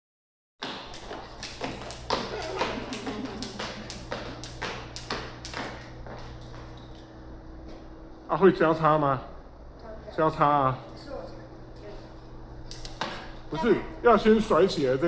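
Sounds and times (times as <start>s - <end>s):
jump rope slapping concrete: 0.6s - 6.8s, 12.7s - 13.4s
steady low hum: 0.6s - 15.0s.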